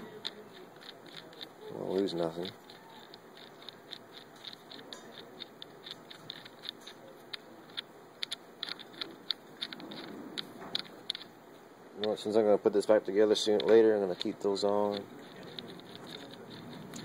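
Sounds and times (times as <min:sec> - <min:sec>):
metal nuts clicking on studs: 0:00.0 - 0:11.4, 0:13.4 - 0:17.0
soft handling rustle: 0:00.0 - 0:17.0.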